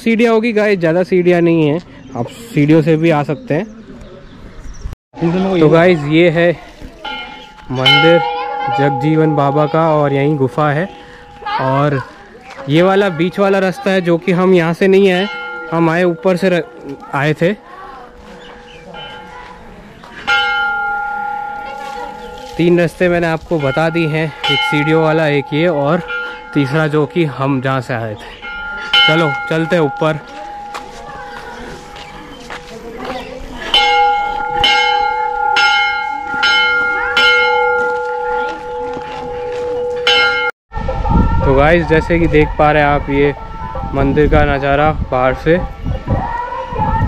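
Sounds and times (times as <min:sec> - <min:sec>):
temple bell ringing: 0:07.0 - 0:45.6.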